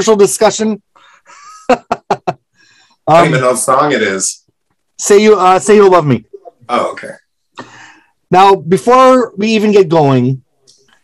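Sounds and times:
man laughing: 1.3s - 2.4s.

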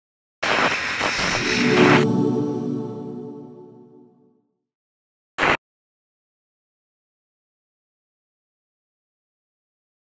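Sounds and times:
loud hiss-like static burst: 0.4s - 2.0s, 5.4s - 5.6s
musical chord: 1.4s - 4.5s.

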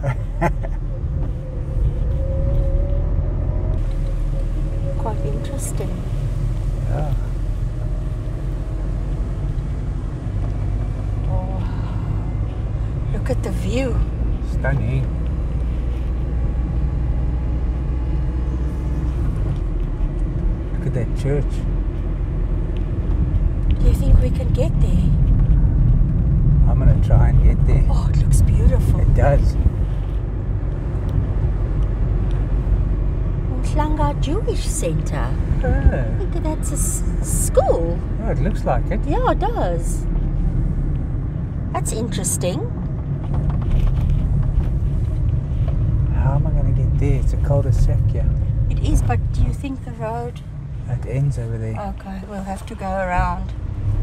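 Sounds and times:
car driving rumble: 0.0s - 54.0s.

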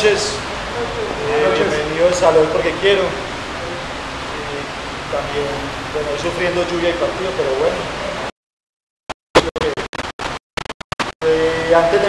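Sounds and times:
choppy voice fragments: 0.0s - 8.3s.

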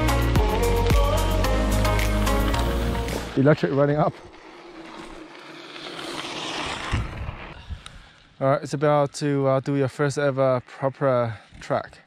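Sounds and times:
bike tyres on dirt trail: 0.0s - 12.0s.

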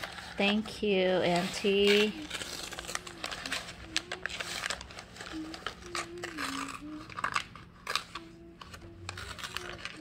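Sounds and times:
paper crinkling and rustling: 0.0s - 10.0s.

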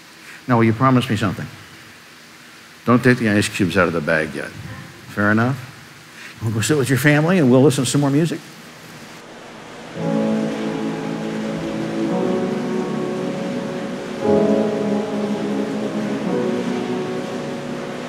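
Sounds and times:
church organ playing chords: 9.2s - 18.0s.

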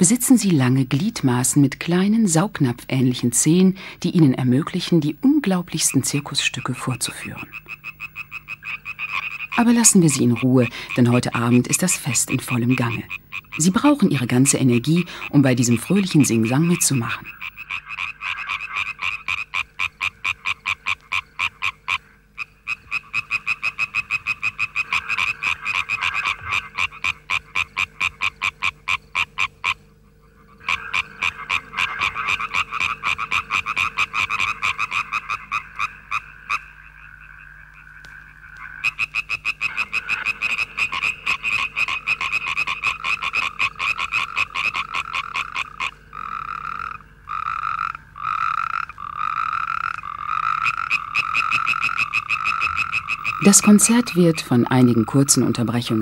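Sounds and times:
tree frogs calling: 0.0s - 56.0s.

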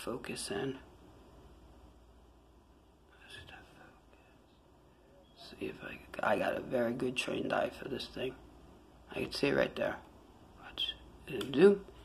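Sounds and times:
faint whispering voice: 3.1s - 6.4s, 10.5s - 11.4s.

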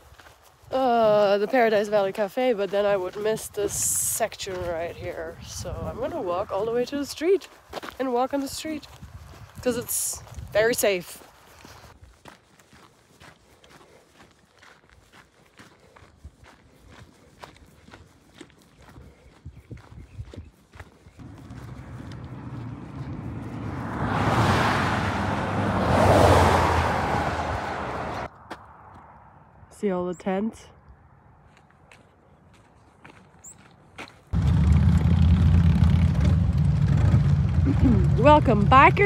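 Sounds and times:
footsteps crunching on gravel: 0.0s - 23.8s, 31.4s - 34.4s
vehicle passing on highway: 21.2s - 29.7s, 34.3s - 39.0s.

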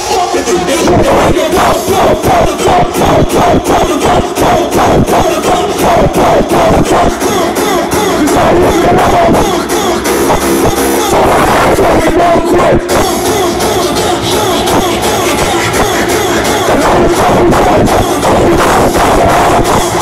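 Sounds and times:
crowd joining in: 0.0s - 20.0s
live dance music: 0.0s - 20.0s
mcs' voices: 0.0s - 20.0s.

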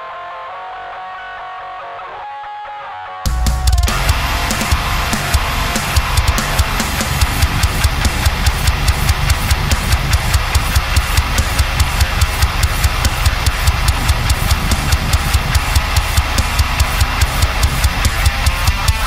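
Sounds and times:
heavy metal electric guitar riffing: 0.0s - 19.0s
drum track: 3.3s - 19.0s.

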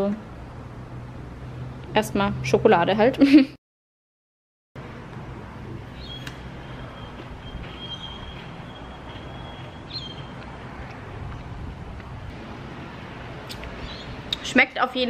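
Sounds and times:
distant road traffic rumble: 0.0s - 3.2s, 4.8s - 15.0s.

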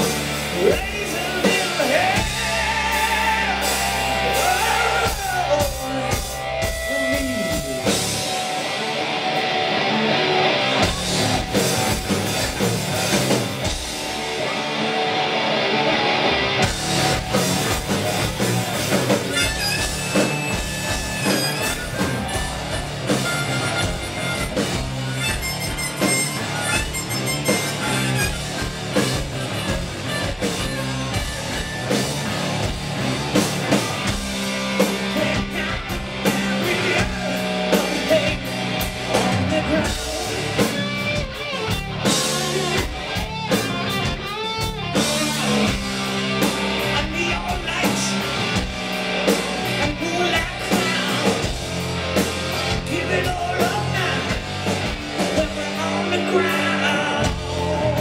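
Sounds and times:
bass guitar: 0.0s - 58.0s
drum kit: 0.0s - 58.0s
electric guitar: 0.0s - 58.0s.

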